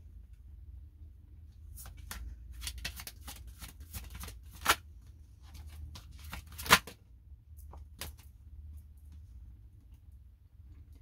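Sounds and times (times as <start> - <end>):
cards being shuffled: 1.7 - 4.8, 5.5 - 7.0.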